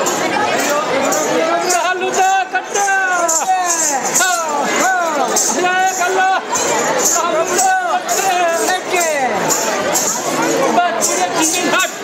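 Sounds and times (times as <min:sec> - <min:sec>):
jingling rattle: 0:00.0 - 0:12.0.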